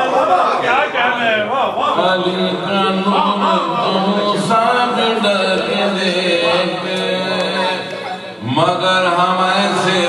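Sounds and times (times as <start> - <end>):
man chanting poetry: 0.6 - 10.0.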